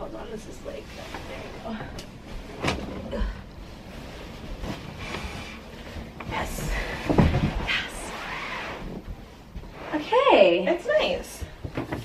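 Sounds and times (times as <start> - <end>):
mattress shuffling and rubbing: 3.7 - 10.3.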